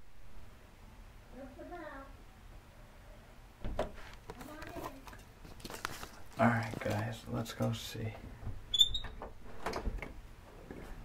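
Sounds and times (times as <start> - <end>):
knocks and bumps from walking: 3.6 - 7.1.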